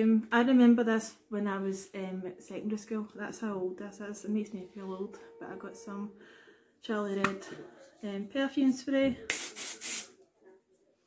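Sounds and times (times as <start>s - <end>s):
aerosol spray hiss: 9.3s - 10.1s.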